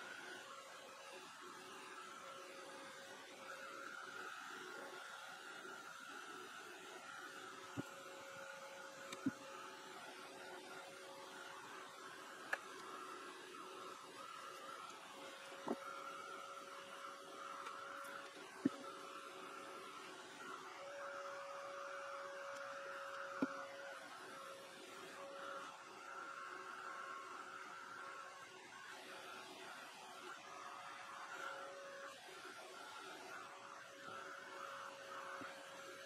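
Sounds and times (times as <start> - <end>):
hair dryer running: 0.0 - 36.0.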